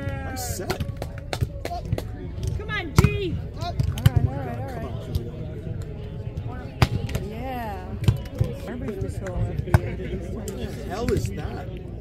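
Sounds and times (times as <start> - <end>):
faint voices: 0.0 - 12.0.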